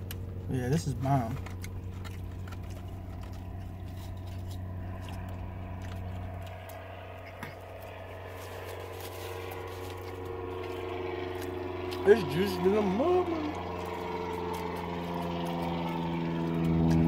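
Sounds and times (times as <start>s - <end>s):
man chewing a burger: 0.0s - 12.0s
low hum in car cabin: 0.0s - 17.0s.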